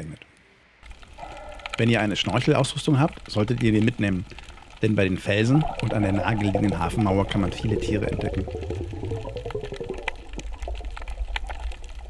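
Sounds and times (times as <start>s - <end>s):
underwater clicks and crackles: 0.8s - 12.0s
underwater low rumble: 3.1s - 12.0s.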